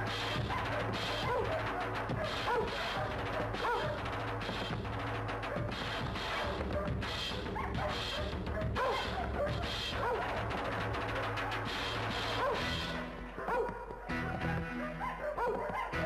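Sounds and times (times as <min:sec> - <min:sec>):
background music: 0:00.0 - 0:16.0
dogs barking: 0:00.0 - 0:16.0.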